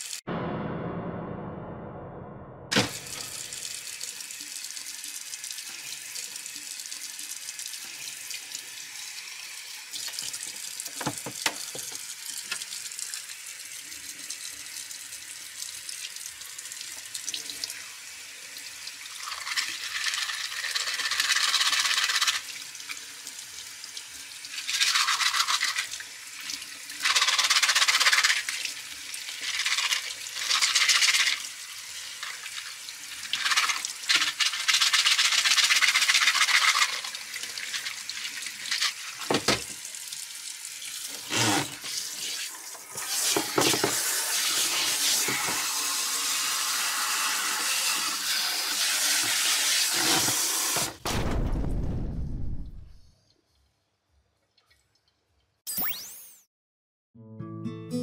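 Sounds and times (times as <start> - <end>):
tap water running into sink: 2.7 - 51.0.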